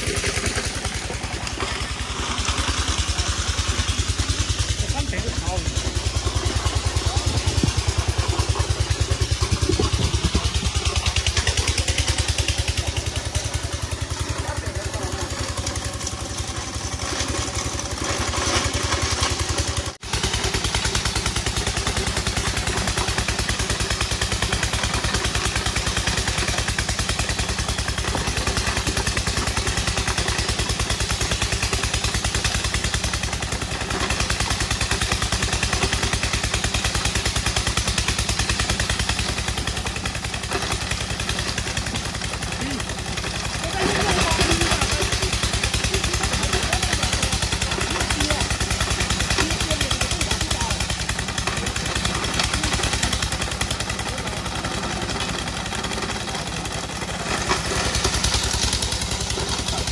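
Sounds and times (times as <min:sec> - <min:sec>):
machine clatter: 0:00.0 - 0:59.9
stone-grinding machine running: 0:00.0 - 0:59.9.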